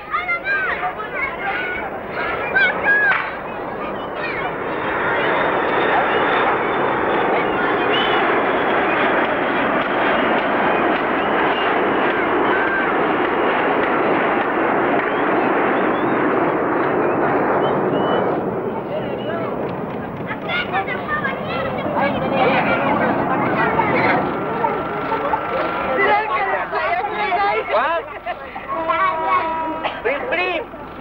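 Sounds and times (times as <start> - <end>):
faint children's voices: 0.0 - 31.0
jet airliner passing overhead: 0.0 - 31.0.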